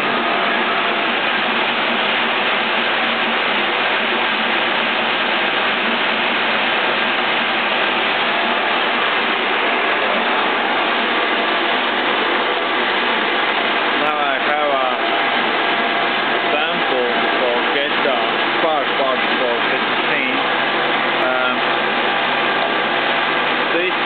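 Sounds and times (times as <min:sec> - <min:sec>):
boring machine running: 0:00.0 - 0:24.0.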